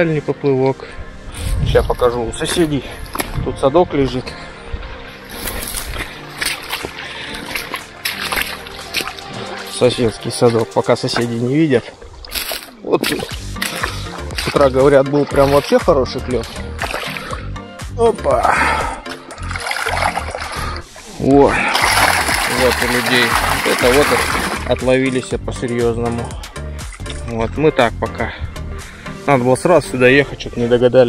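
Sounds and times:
faint background music: 0.0s - 31.0s
footsteps on wet stones: 1.9s - 3.4s, 5.3s - 17.4s, 19.3s - 20.7s, 21.8s - 25.0s
water splashing: 5.3s - 17.5s, 18.6s - 25.3s.

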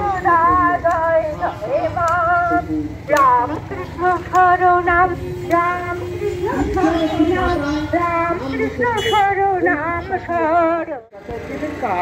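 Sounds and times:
woman singing chant over loudspeaker: 0.0s - 12.0s.

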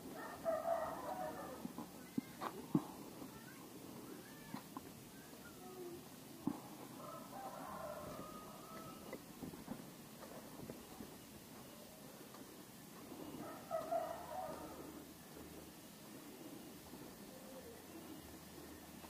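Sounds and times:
rooster crowing: 0.1s - 1.6s, 7.0s - 9.2s, 13.4s - 14.9s.

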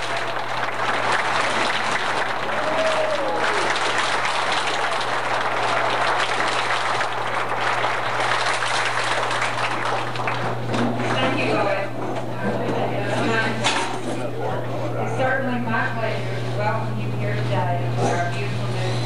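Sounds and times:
audience applauding: 0.0s - 11.8s.

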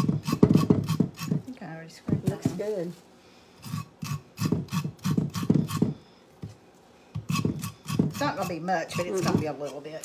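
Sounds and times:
knife scraping corn cobs: 0.0s - 1.4s, 3.6s - 6.0s, 7.2s - 10.0s.

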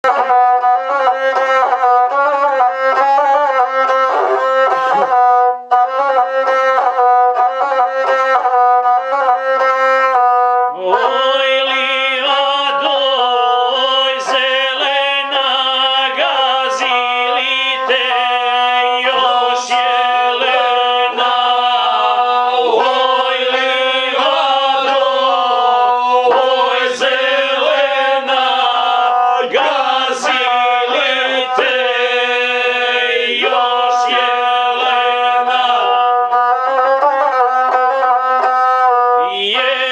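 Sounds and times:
bowed single-string fiddle: 0.0s - 39.9s
man singing: 10.8s - 36.6s, 39.2s - 39.9s.

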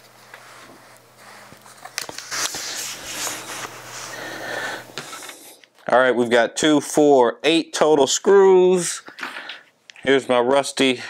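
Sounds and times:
cloth rustling and sliding: 0.0s - 4.4s.

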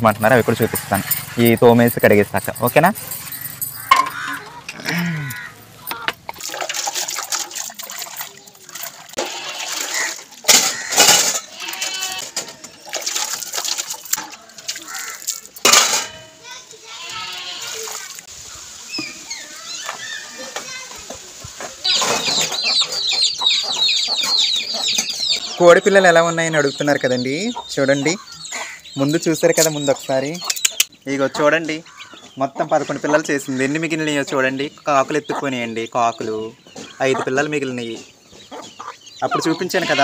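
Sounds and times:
chickens clucking: 0.0s - 6.6s, 17.9s - 40.0s
steel utensils clinking and scraping: 0.3s - 16.4s
water splashing: 3.4s - 11.2s, 12.6s - 16.1s, 17.3s - 18.9s.

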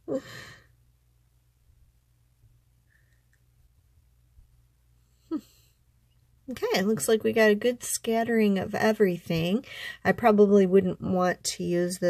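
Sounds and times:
woman laughing breathily: 0.0s - 0.7s
faint room hum: 0.0s - 12.0s.

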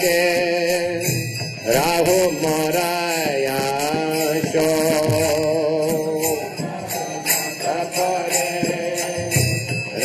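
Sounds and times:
hand cymbals ringing: 0.0s - 10.0s
person chanting a devotional melody: 0.0s - 10.0s.

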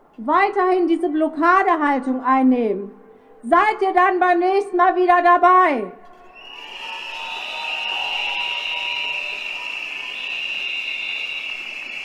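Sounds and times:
crowd blowing whistles: 6.3s - 12.0s.

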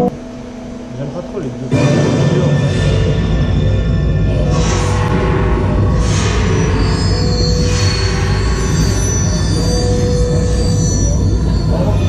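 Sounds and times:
eerie soundtrack music: 0.0s - 12.0s
deep rumble: 1.7s - 12.0s
high screeching: 3.5s - 12.0s.

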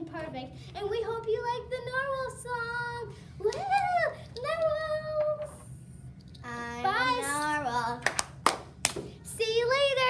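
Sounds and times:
sharp hand claps: 8.0s - 9.1s.

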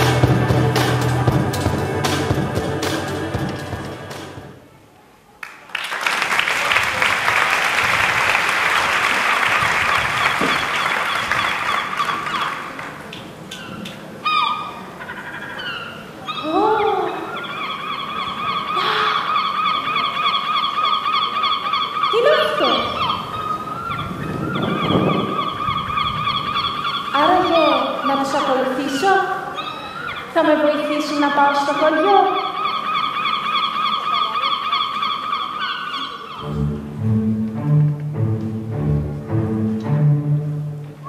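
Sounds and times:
audience applause: 5.4s - 13.5s.

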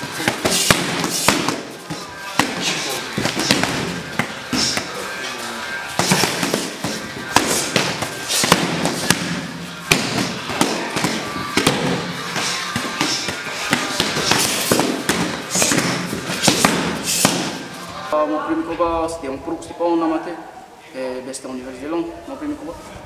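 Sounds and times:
punches and kicks on pads: 0.0s - 1.6s, 6.0s - 17.6s
background pad strikes: 0.0s - 5.1s, 5.8s - 17.7s.

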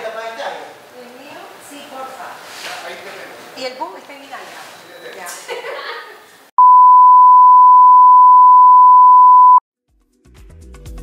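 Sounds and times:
loud electronic beep: 6.6s - 9.6s.

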